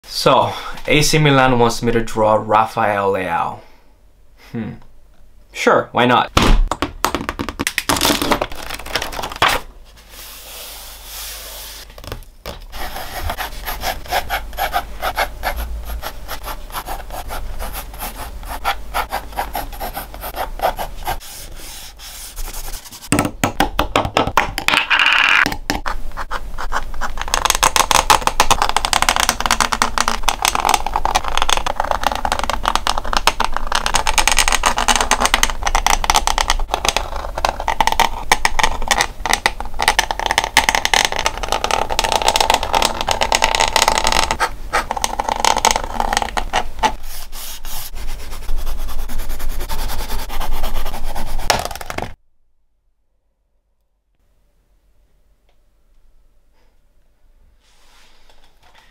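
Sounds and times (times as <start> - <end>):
pen nib scratching on paper: 12.7 - 22.9, 26.2 - 28.0, 44.3 - 51.6
pencil hatching on paper: 12.7 - 23.1.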